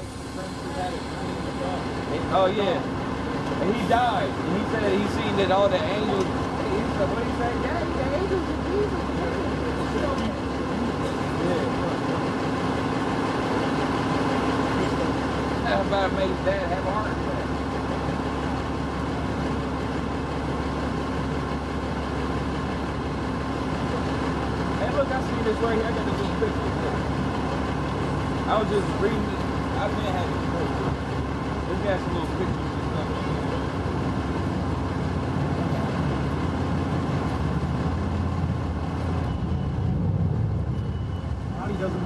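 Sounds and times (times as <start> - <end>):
faint voices: 0.0 - 12.9
bus engine idling: 0.0 - 42.0
street traffic noise: 0.0 - 42.0.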